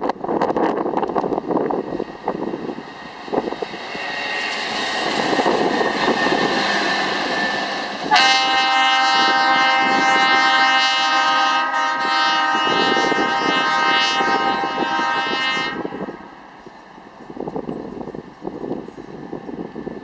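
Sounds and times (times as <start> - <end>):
railroad horn blast: 8.0 - 16.4.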